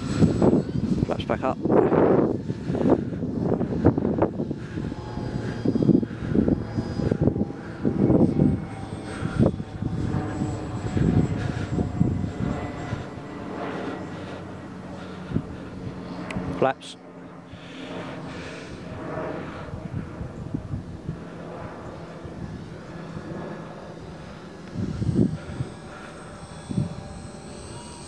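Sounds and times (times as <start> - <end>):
model plane motor whine: 0.0 - 28.0
wind buffeting microphone: 0.0 - 28.0.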